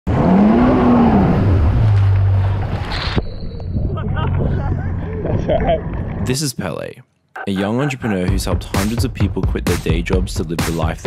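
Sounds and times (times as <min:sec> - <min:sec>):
jet ski engine revving: 0:00.1 - 0:02.9.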